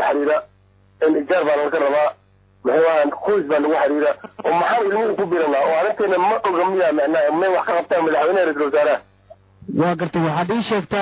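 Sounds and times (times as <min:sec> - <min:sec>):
person talking over radio: 0:01.0 - 0:09.0.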